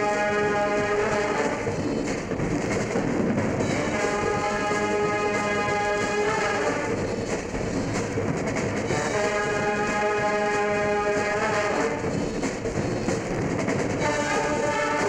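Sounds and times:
concert band playing brass chords: 0:00.0 - 0:01.7, 0:03.7 - 0:06.9, 0:08.9 - 0:12.1, 0:14.0 - 0:15.0.

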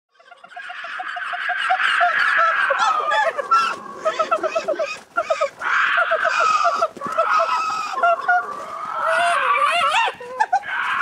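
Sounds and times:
flock of birds calling: 0:00.1 - 0:11.0.

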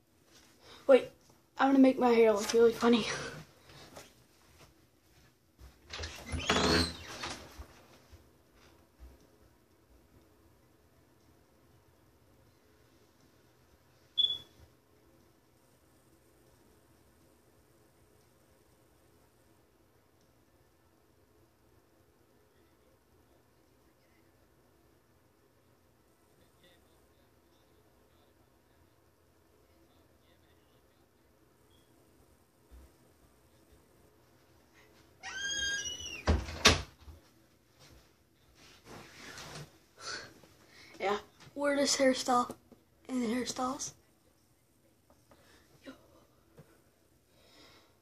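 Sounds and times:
door hinge squeaking: 0:06.0 - 0:07.4, 0:35.2 - 0:36.5.

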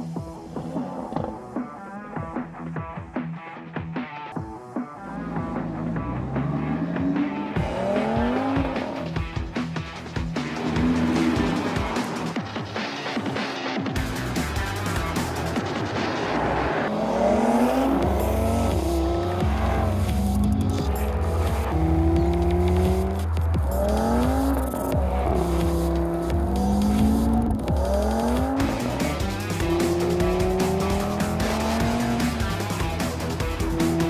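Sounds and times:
music: 0:00.0 - 0:34.0
car engine accelerating hard: 0:05.0 - 0:34.0.

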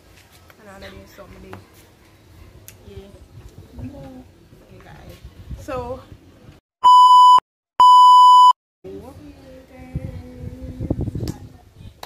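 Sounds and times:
electronic test tone beep: 0:06.8 - 0:08.6.

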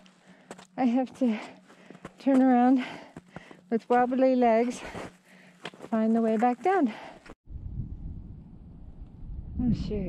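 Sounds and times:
wind on microphone: 0:07.5 - 0:10.0.

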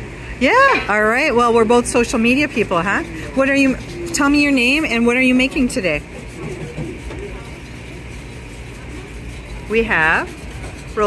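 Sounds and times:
kitchen hum and hiss: 0:00.0 - 0:11.0.

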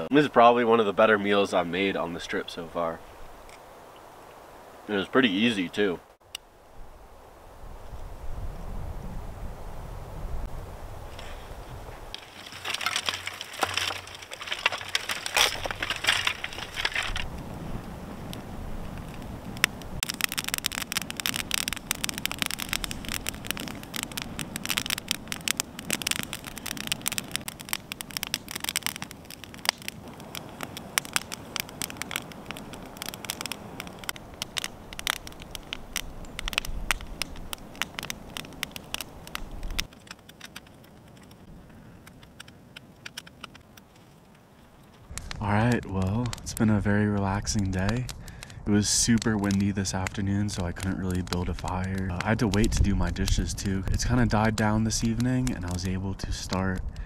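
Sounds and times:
campfire crackling and popping: 0:00.0 - 0:06.5, 0:11.1 - 0:57.0.

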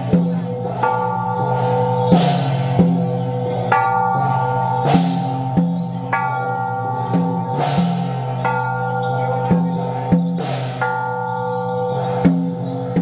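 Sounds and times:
cymbal crash: 0:00.0 - 0:13.0
gongs struck in slow beat: 0:00.0 - 0:13.0.

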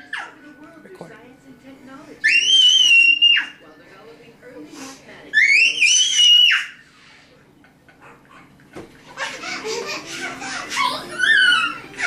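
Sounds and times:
toddler squealing: 0:02.2 - 0:03.6, 0:05.4 - 0:06.8, 0:10.1 - 0:12.0.

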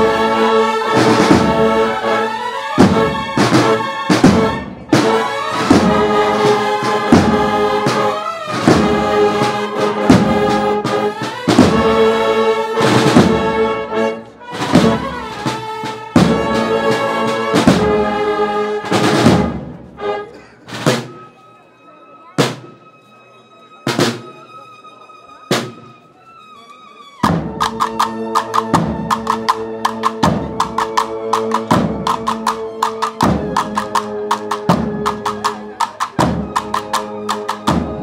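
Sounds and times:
drum strokes: 0:02.8 - 0:12.2, 0:14.5 - 0:18.1, 0:25.5 - 0:26.0, 0:27.2 - 0:38.0.

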